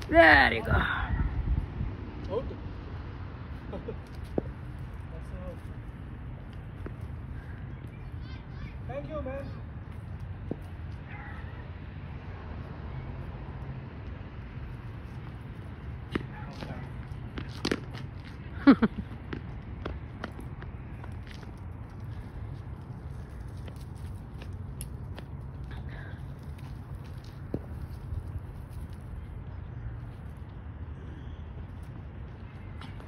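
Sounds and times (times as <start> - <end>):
steady low rumble: 0.0 - 33.0
man laughing: 3.6 - 4.2, 18.5 - 19.2.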